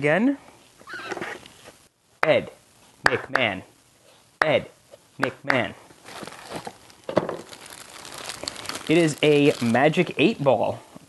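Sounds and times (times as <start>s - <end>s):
plastic wrapping crinkling: 6.0s - 10.6s.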